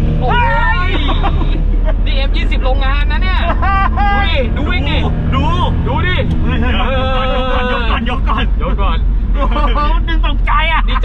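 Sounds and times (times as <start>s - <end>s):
car engine rumble: 0.0s - 11.0s
road noise: 0.0s - 11.0s
people talking: 0.2s - 11.0s.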